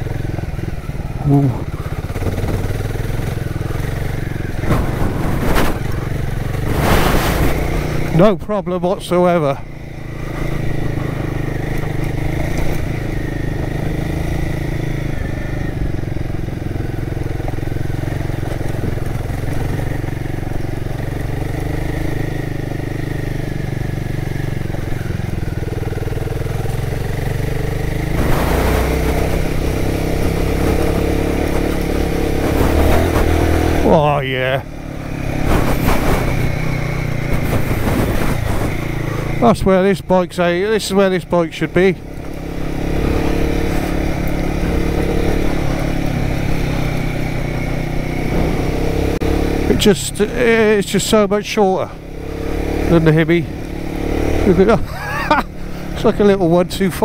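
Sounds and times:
motorcycle engine running: 0:00.0 - 0:57.0
road and riding noise: 0:00.0 - 0:57.0.

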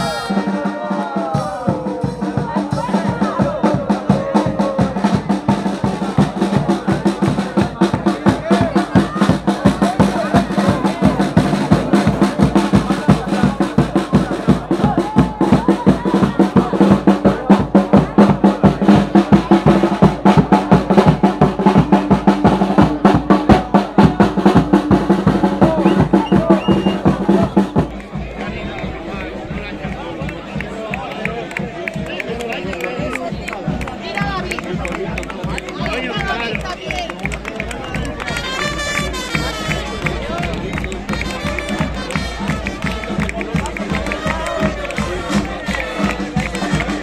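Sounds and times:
crowd voices: 0:00.0 - 0:47.0
drums beating fast: 0:00.0 - 0:47.0.

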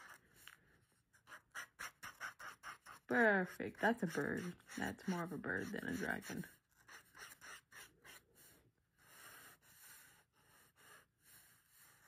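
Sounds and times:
marker drawing on paper: 0:00.0 - 0:12.0.

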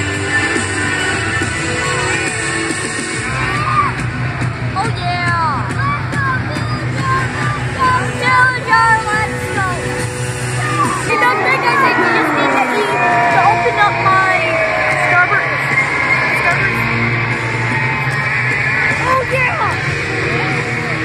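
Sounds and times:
crowd shouting and whooping: 0:00.0 - 0:21.0
music over pa system: 0:00.0 - 0:21.0.

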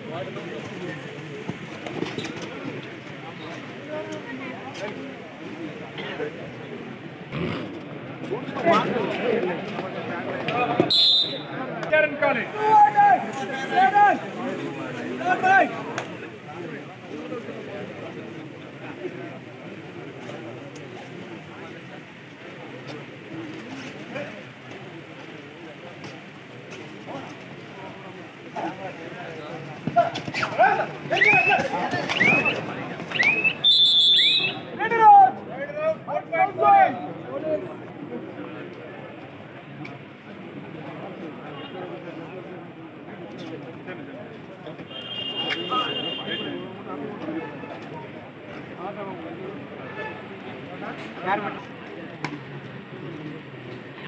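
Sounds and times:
crowd voices talking and calling: 0:00.0 - 0:54.0.

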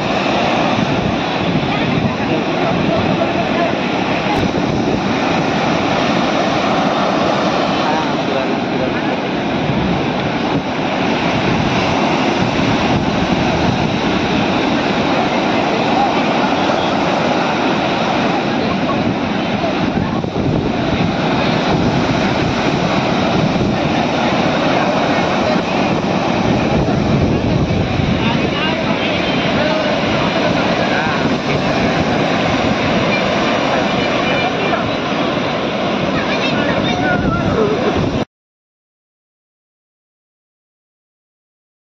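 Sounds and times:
ocean surf breaking: 0:00.0 - 0:38.3.

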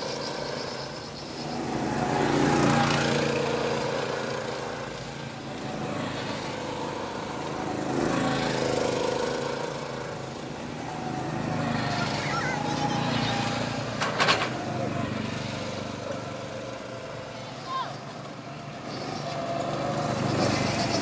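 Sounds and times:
go-kart engines passing: 0:00.0 - 0:21.0.

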